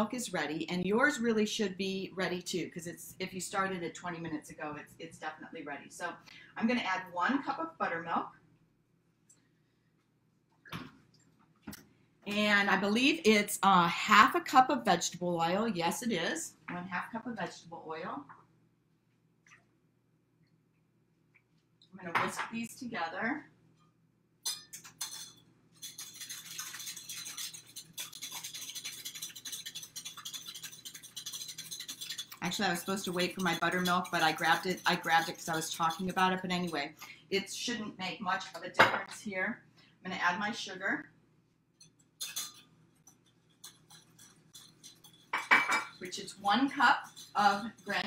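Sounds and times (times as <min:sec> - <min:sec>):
whisk clinking on glass bowl: 0:24.4 - 0:36.9, 0:41.8 - 0:48.0
utensils clattering: 0:24.5 - 0:36.8, 0:42.2 - 0:48.0
wire whisk beating in glass bowl: 0:24.5 - 0:36.9, 0:42.2 - 0:48.0.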